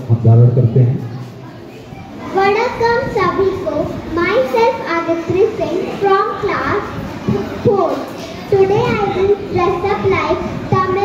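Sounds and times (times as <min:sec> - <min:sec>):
girl speaking into microphone: 0:01.0 - 0:11.0.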